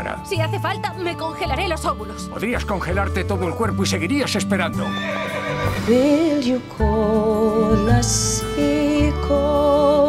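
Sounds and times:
background music: 0:00.0 - 0:10.0
horse whinnying: 0:04.8 - 0:05.9.

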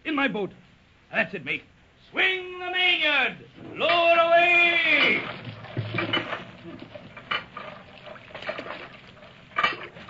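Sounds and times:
wooden boat clattering and knocking: 0:04.8 - 0:10.0.

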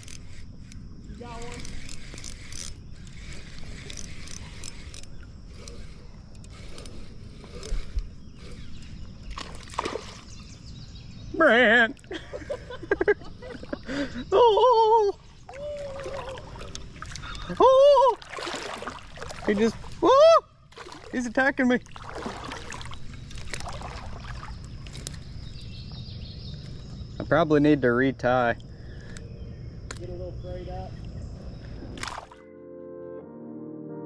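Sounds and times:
creek water sloshing and splashing: 0:07.3 - 0:10.6, 0:15.3 - 0:25.7, 0:32.0 - 0:32.4
wavering vocal calls: 0:14.3 - 0:18.3.

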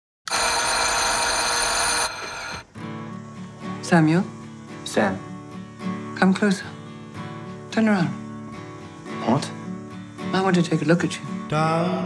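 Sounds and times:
electric bell ringing: 0:00.3 - 0:02.6.

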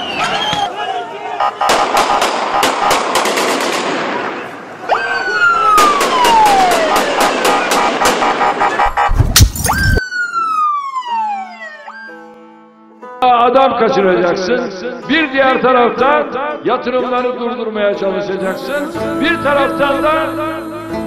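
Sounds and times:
rapid sharp bangs: 0:01.6 - 0:04.5, 0:05.8 - 0:09.6
siren wail sweeping down: 0:04.9 - 0:12.2.

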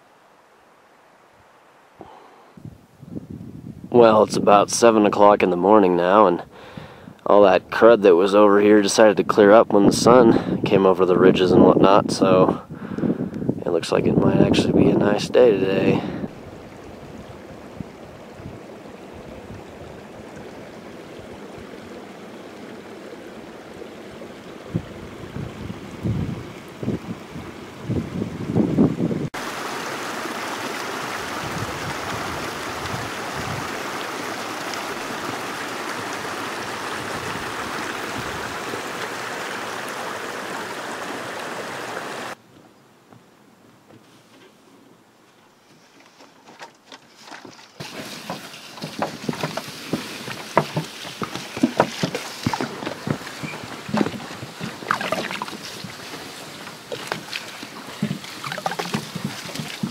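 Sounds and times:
faint steady hiss: 0:00.0 - 0:26.9
stream rushing over rocks: 0:15.3 - 0:42.4, 0:47.7 - 0:59.9.

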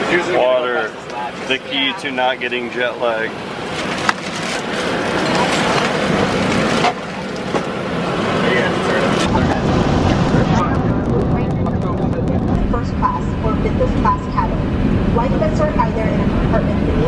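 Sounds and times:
passengers talking: 0:00.0 - 0:17.0
aircraft cabin rumble: 0:04.6 - 0:17.0.

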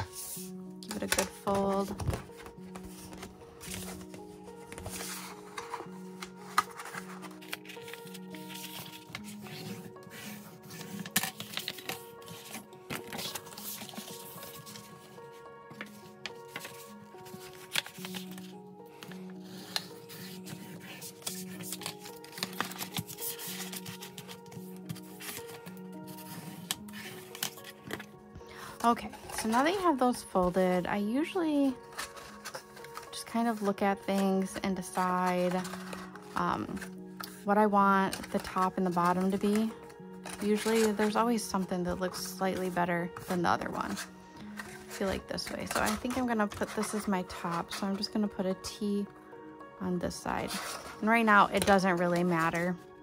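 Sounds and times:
cardstock being folded: 0:00.0 - 0:30.1, 0:31.7 - 0:37.4, 0:38.1 - 0:41.2, 0:43.9 - 0:48.1
soft background music: 0:00.0 - 0:53.0.

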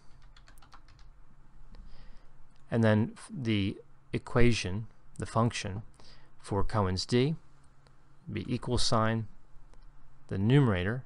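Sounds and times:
computer keyboard clicks: 0:00.1 - 0:01.1.

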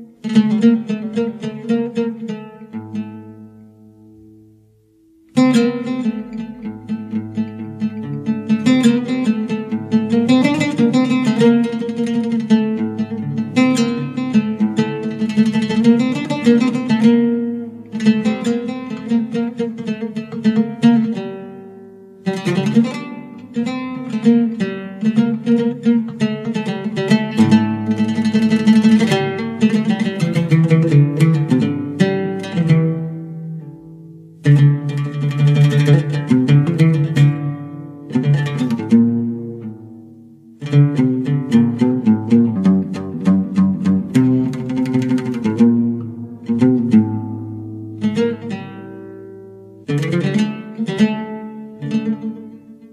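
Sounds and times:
plucked string instrument music: 0:00.0 - 0:52.9.

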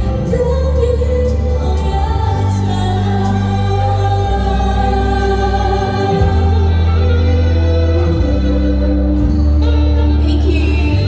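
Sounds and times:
woman singing a pop ballad: 0:00.0 - 0:07.5, 0:10.0 - 0:11.0
musical accompaniment: 0:00.0 - 0:11.0
steady bass line: 0:00.0 - 0:11.0.

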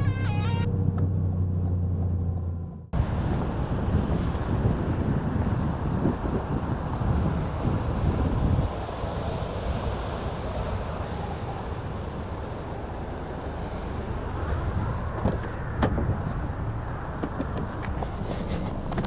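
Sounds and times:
car engine while driving: 0:00.0 - 0:19.0
road noise: 0:00.0 - 0:19.0.

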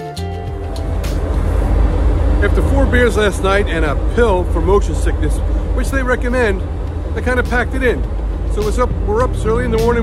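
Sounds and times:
wind buffeting microphone: 0:00.6 - 0:10.0
man speaking: 0:02.4 - 0:10.0.

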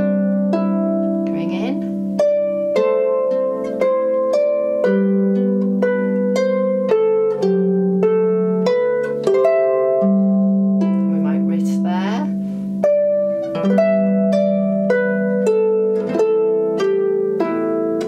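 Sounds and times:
harp playing: 0:00.0 - 0:18.0.

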